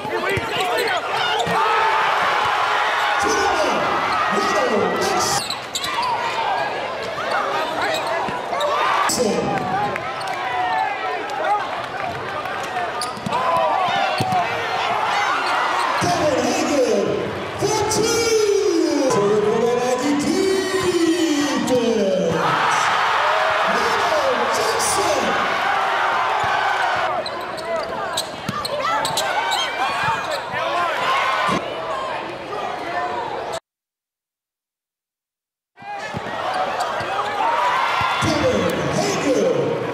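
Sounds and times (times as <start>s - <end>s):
crowd calling and shouting: 0.0s - 33.6s, 35.8s - 39.9s
sneakers squeaking: 0.1s - 1.6s, 5.3s - 8.8s, 13.0s - 13.4s, 14.0s - 14.4s, 26.4s - 30.6s.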